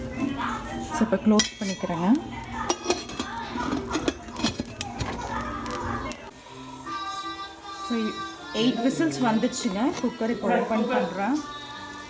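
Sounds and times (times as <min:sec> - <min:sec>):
background music: 0:00.0 - 0:12.0
metal plate stand clattering in cooker: 0:01.3 - 0:05.3.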